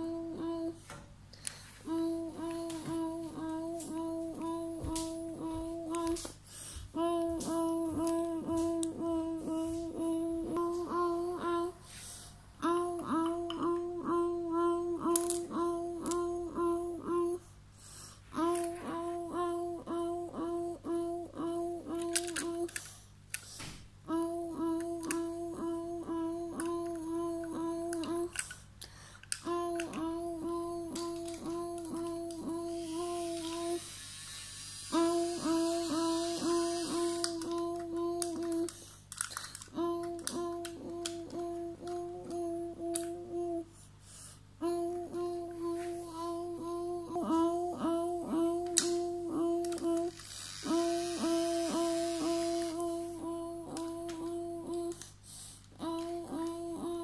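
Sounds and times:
toy train motor whirring: 14.6s - 17.3s, 21.6s - 23.4s, 24.2s - 28.6s, 29.2s - 43.2s, 46.2s - 55.1s.

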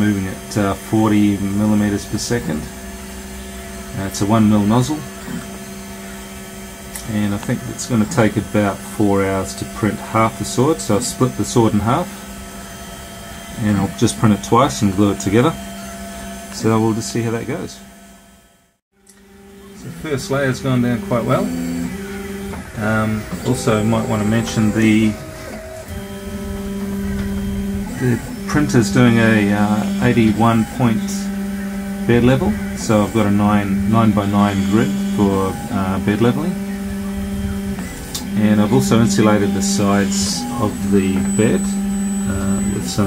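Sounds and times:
three d printer motors humming: 0.0s - 43.0s.

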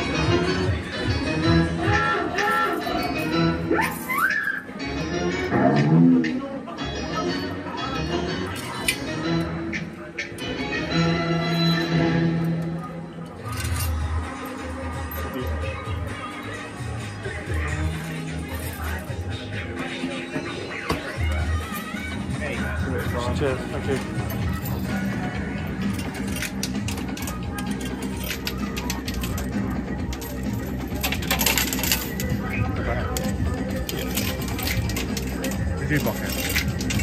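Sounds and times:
arcade background music: 0.0s - 37.0s
coins clinking: 13.4s - 14.1s, 25.8s - 37.0s.

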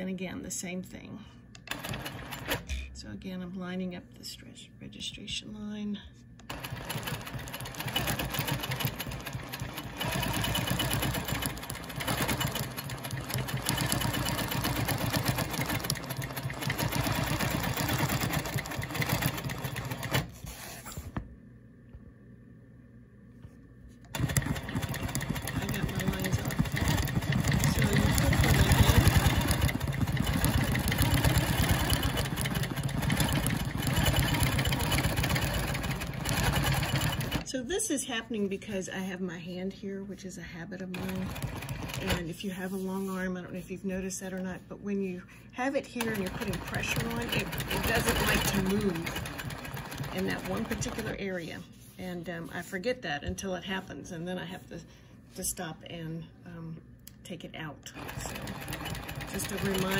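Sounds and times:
quilting machine stitching rapidly: 1.7s - 2.6s, 6.5s - 20.3s, 24.1s - 37.4s, 40.9s - 42.8s, 46.0s - 51.2s, 57.9s - 59.9s.

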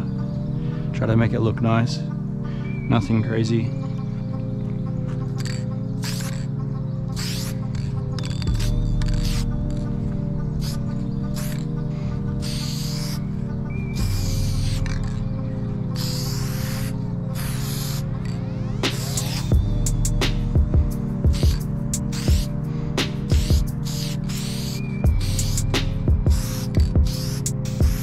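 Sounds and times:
background music with bass: 0.0s - 28.0s
spray-paint can hissing: 5.4s - 6.5s, 7.1s - 9.9s, 10.5s - 11.7s, 12.4s - 15.2s, 15.9s - 28.0s.

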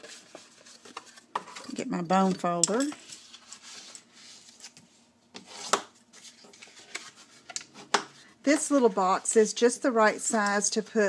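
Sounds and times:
paper rustling and rubbing: 0.0s - 1.7s, 3.0s - 7.6s.

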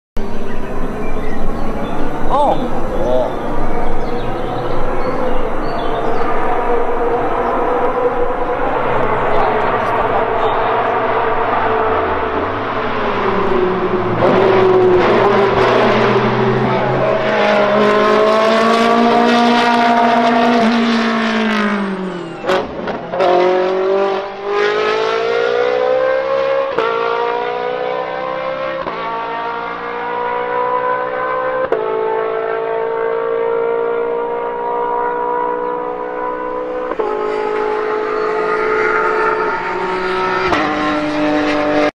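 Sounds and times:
race car engines revving: 0.2s - 41.9s.

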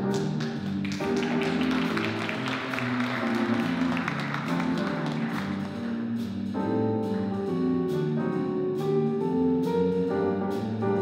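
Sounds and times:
bass line: 0.0s - 11.0s
drum kit cymbal beat: 0.0s - 11.0s.

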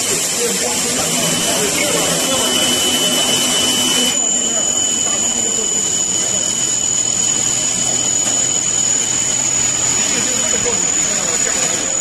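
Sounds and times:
coolant spray: 0.0s - 4.1s
drilling machine drilling steel: 0.0s - 12.0s
high-pitched whine: 0.0s - 12.0s.

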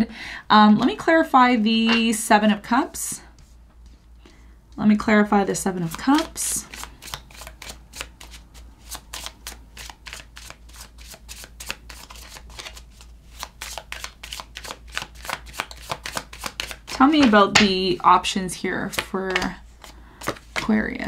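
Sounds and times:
cards being shuffled: 5.7s - 17.8s, 18.8s - 20.8s.

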